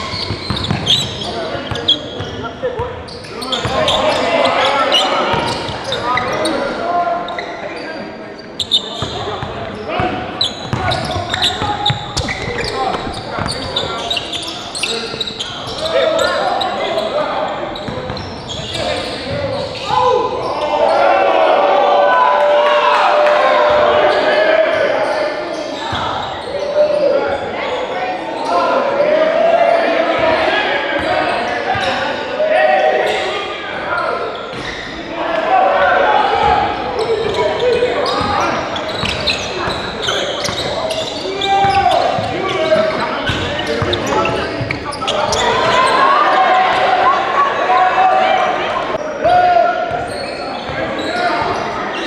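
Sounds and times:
voices echoing in a hall: 0:00.0 - 0:52.0.

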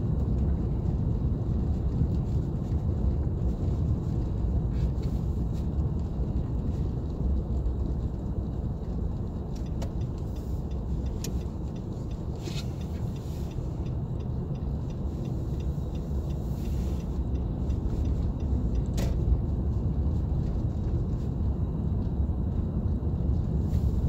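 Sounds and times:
engine and tyre rumble: 0:00.0 - 0:24.0.

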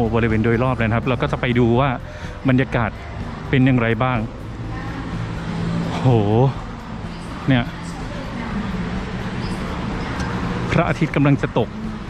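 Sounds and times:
man speaking: 0:00.0 - 0:04.3, 0:06.0 - 0:06.7, 0:07.5 - 0:07.7, 0:10.7 - 0:11.7.

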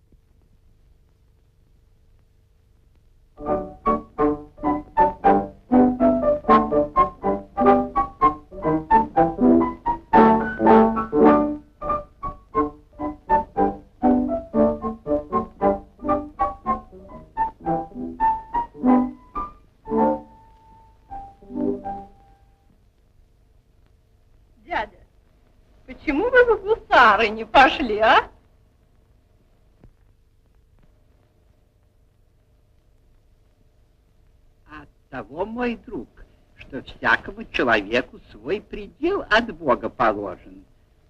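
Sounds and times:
piano music: 0:03.4 - 0:22.7.

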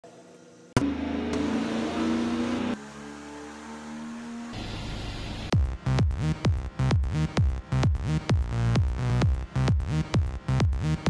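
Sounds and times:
engine running under throttle: 0:00.8 - 0:05.6
electronic music: 0:04.6 - 0:11.0.

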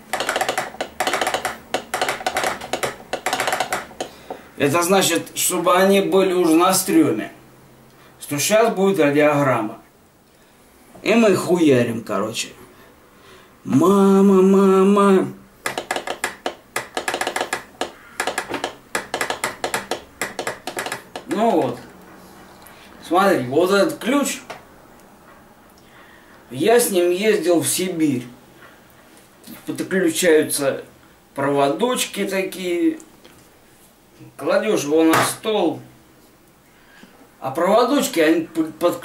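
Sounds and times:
morse telegraph key clicking: 0:00.0 - 0:04.2, 0:15.6 - 0:21.3.

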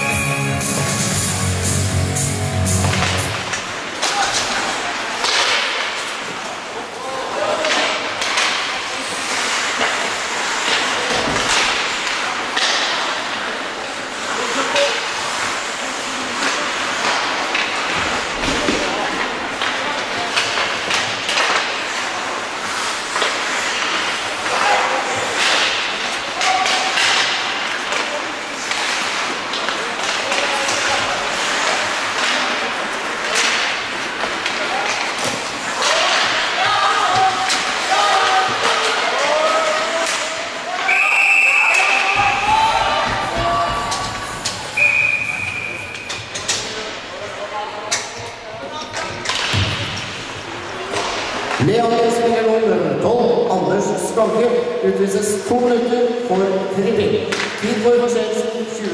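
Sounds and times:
skates scraping ice: 0:00.0 - 0:41.0, 0:41.7 - 0:47.4
sticks and puck clacking: 0:00.0 - 0:41.0, 0:41.6 - 0:47.2, 0:47.9 - 0:51.9, 0:57.2 - 0:57.9.

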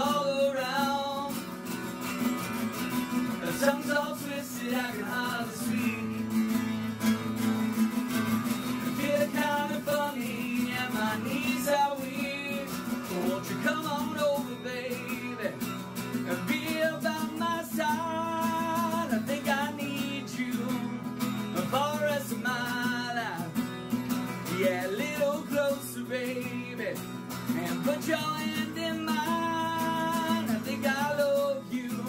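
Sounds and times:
guitar accompaniment: 0:00.0 - 0:32.0
man singing: 0:00.0 - 0:32.0.

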